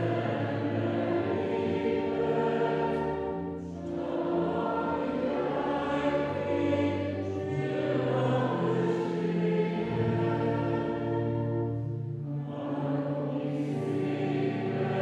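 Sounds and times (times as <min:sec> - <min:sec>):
voices singing slow hymn: 0:00.0 - 0:15.0.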